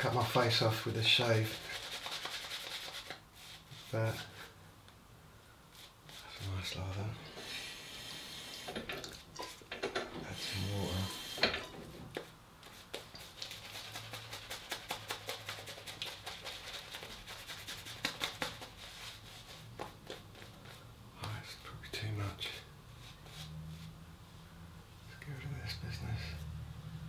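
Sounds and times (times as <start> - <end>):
shaving brush lathering stubble: 12.7 - 20.8.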